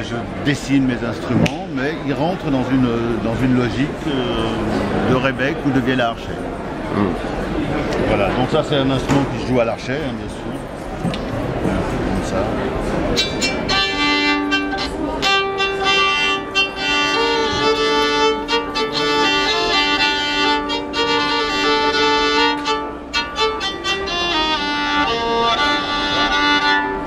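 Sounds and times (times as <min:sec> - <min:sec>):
bowed fiddle melody: 0:13.0 - 0:27.0.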